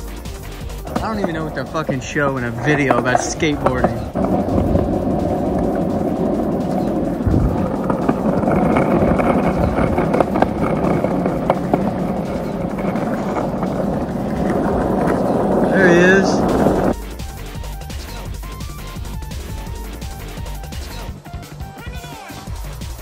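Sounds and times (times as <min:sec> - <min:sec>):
skateboard wheels rolling on asphalt: 0:00.0 - 0:23.0
wheels clicking over cracks: 0:00.0 - 0:23.0.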